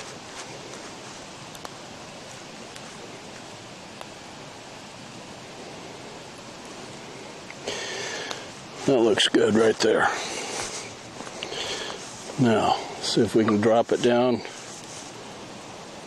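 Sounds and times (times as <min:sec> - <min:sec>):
campfire hissing and popping: 0:00.0 - 0:16.0.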